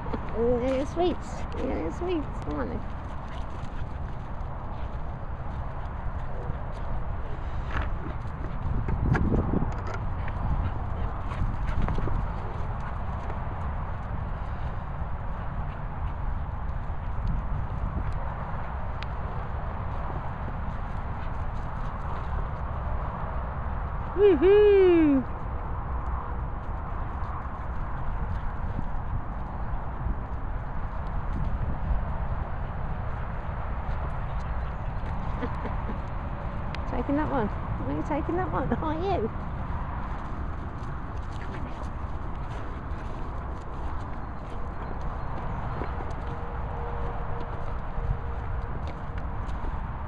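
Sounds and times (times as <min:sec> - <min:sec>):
steady low rumble: 0:00.0 - 0:50.0
wind on microphone: 0:00.0 - 0:50.0.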